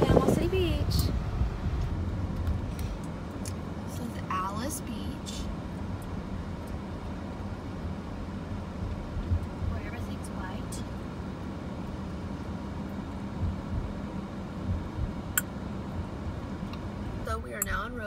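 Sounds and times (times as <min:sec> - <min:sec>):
car road and engine rumble: 0:00.0 - 0:18.0.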